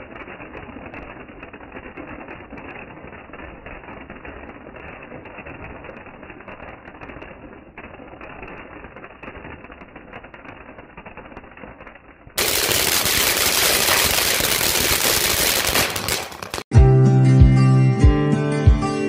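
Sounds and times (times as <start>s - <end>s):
crackling fountain firework: 0.0s - 16.7s.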